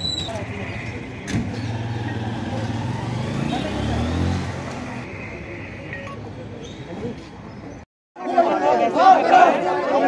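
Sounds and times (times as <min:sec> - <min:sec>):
vehicle engine passing by: 0:01.4 - 0:05.0.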